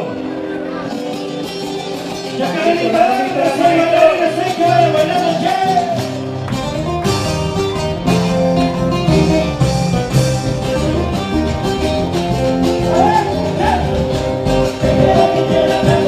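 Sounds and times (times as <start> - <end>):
latin dance band music: 0.0 - 16.0.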